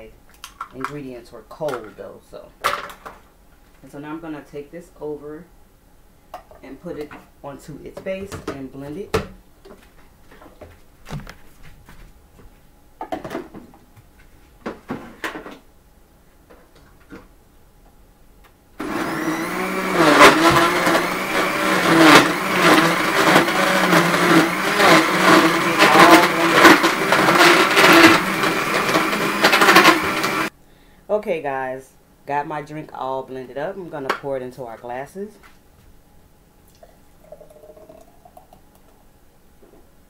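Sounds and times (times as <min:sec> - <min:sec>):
blender motor crushing ice: 0:18.8 - 0:30.5.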